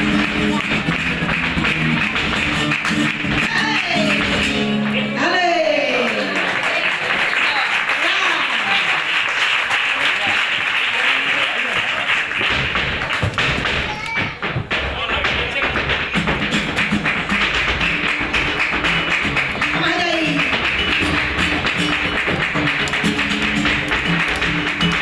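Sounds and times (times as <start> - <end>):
rhythmic hand-clapping: 0.0 - 5.2, 5.9 - 25.0
flamenco guitar: 0.0 - 6.8, 11.8 - 25.0
dancer's footwork thuds: 12.4 - 19.6.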